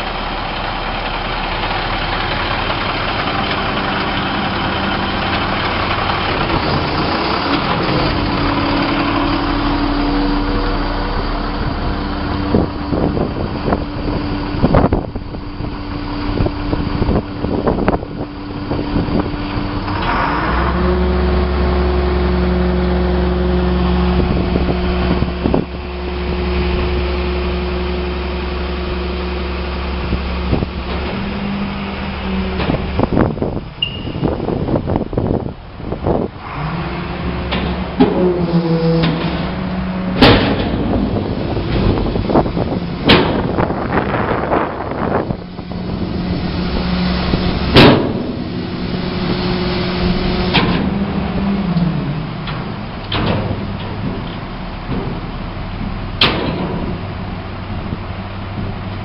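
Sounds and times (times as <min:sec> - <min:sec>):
diesel truck engine running: 0:00.0 - 0:59.0
sharp clunks and knocks: 0:37.4 - 0:43.9, 0:46.8 - 0:51.0, 0:52.4 - 0:57.8.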